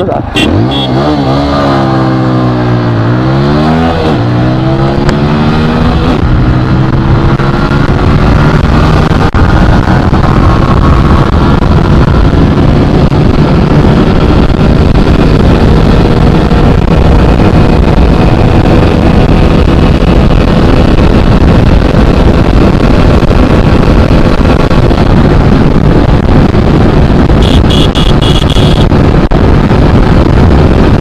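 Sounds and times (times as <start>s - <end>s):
motorcycle engine at full throttle: 0.0s - 31.0s
wind rush on microphone: 0.0s - 31.0s.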